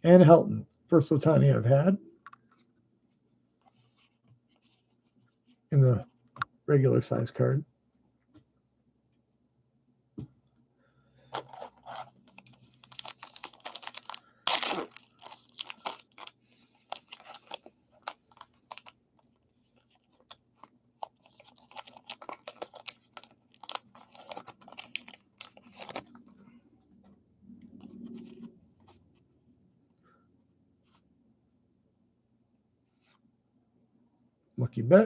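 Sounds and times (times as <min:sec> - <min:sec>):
wrapper ripping: 0:11.3 - 0:19.0, 0:19.8 - 0:26.2
wrapper crinkling and crackling: 0:11.3 - 0:26.2.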